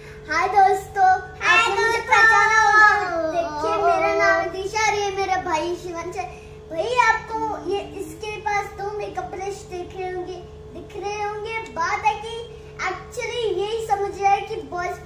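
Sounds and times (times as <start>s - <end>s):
faint steady hum: 0.0s - 15.0s
girl singing: 1.4s - 4.6s.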